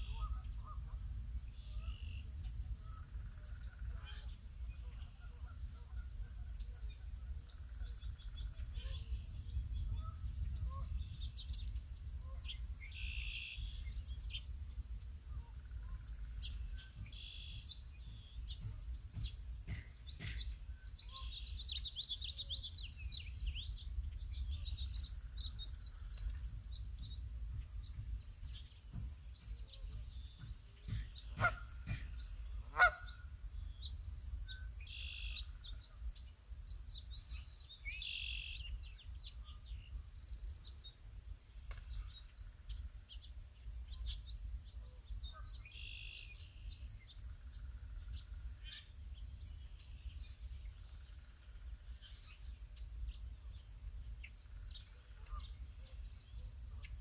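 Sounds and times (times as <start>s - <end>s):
birds calling: 0.0s - 57.0s.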